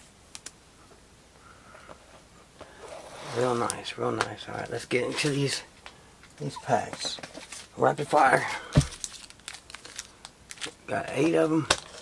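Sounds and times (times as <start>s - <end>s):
foil wrapper crinkling and tearing: 8.7s - 12.0s.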